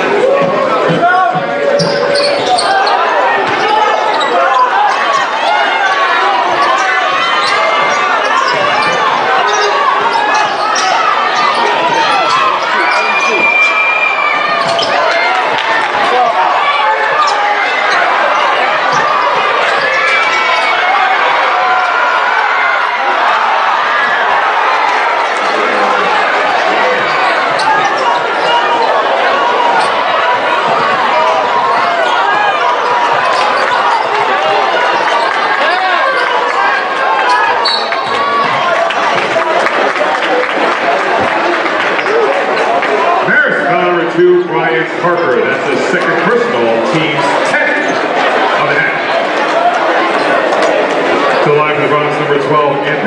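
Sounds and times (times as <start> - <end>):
crowd chatter: 0.0 - 53.0.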